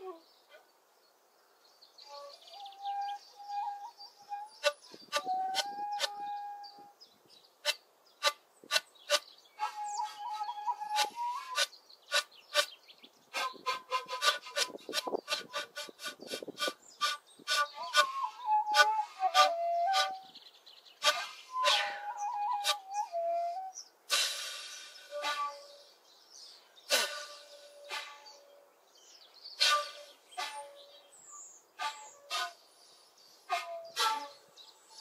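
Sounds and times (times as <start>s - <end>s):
end-blown flutes improvising: 2.1s - 6.9s, 7.6s - 12.7s, 13.3s - 20.4s, 21.0s - 25.8s, 26.9s - 28.6s, 29.6s - 30.8s, 31.8s - 32.6s, 33.5s - 35.0s
sharp percussive breath attacks: 24.1s - 25.1s, 26.9s - 28.3s, 29.6s - 30.6s.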